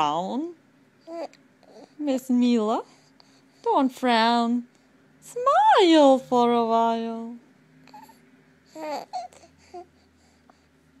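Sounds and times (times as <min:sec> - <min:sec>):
baby cooing: 0:01.0 - 0:02.0, 0:07.9 - 0:09.9.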